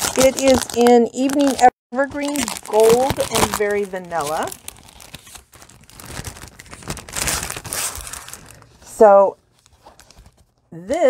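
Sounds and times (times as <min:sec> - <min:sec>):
plastic wrapper crinkling: 0:00.0 - 0:10.8
paper sheets handled: 0:00.0 - 0:10.9.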